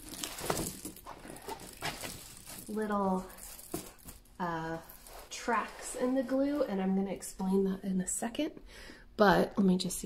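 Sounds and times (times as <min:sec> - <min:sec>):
plastic film rustling and crinkling: 0:00.0 - 0:06.8.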